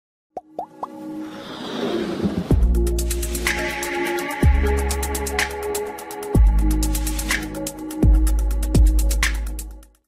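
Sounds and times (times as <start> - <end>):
intro music: 2.2 - 9.9.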